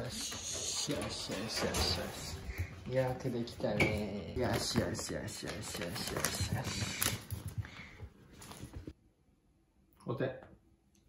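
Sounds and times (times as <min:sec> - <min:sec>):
plastic bag crinkling: 0:04.4 - 0:08.9.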